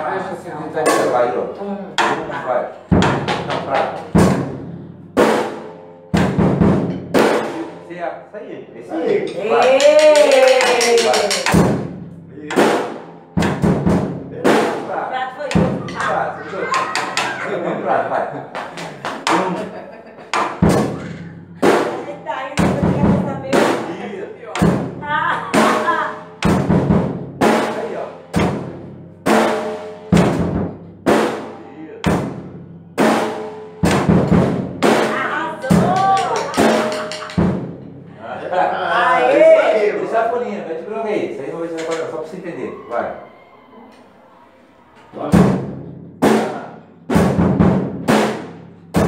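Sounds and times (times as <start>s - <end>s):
drum kit steady beat: 2.9s - 7.9s, 9.3s - 17.9s, 18.5s - 38.1s, 45.3s - 49.0s.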